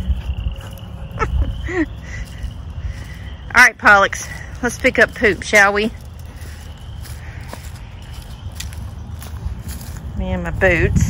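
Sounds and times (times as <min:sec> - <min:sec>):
steady low rumble: 0:00.0 - 0:11.0
boot footsteps on muddy grass: 0:02.4 - 0:11.0.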